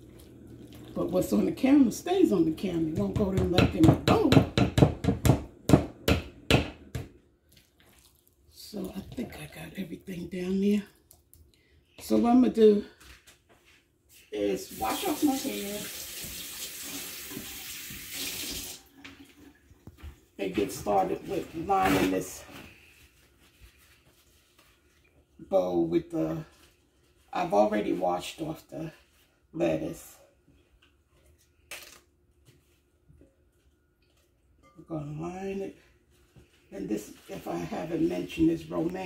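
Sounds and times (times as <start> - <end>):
paper towel crinkling: 20.9 - 25.4.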